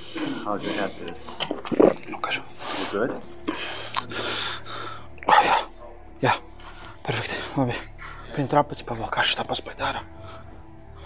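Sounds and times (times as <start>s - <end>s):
man breathing hard: 2.6s - 5.7s.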